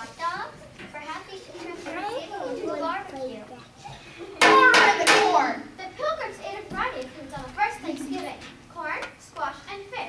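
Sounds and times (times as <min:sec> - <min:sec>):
actors' voices: 0:01.4 - 0:09.0.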